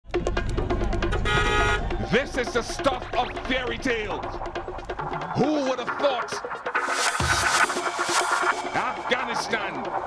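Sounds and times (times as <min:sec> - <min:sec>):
car horn: 0:01.1 - 0:02.0.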